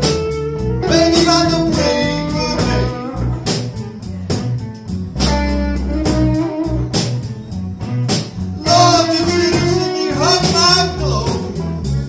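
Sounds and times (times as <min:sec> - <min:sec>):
electric blues band playing: 0:00.0 - 0:12.0
electric guitar: 0:00.0 - 0:12.0.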